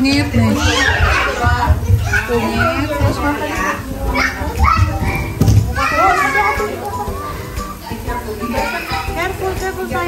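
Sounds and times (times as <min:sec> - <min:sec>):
chatter of voices: 0:00.0 - 0:10.0
music playing: 0:00.0 - 0:10.0.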